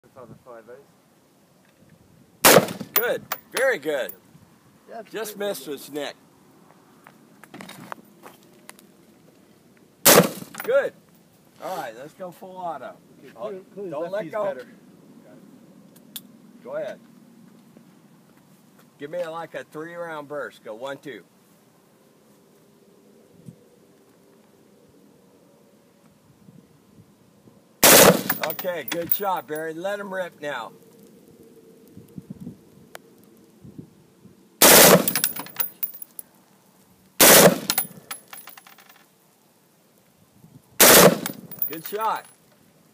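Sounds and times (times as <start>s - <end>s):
background hiss: 0.0s - 17.0s, 17.7s - 42.9s
machine-gun fire: 2.4s - 3.0s, 10.1s - 10.6s, 27.8s - 28.7s, 34.6s - 35.6s, 37.2s - 37.8s, 40.8s - 41.7s.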